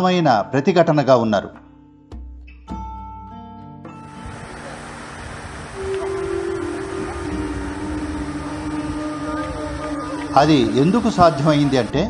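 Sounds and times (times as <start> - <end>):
waterfall rushing: 4.0 - 12.0.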